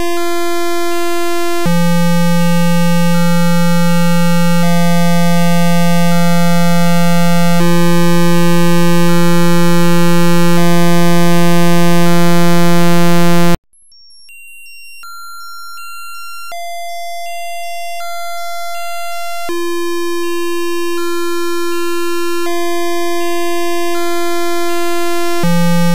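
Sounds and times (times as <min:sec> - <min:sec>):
high tone pattern: 0:02.0 - 0:25.9.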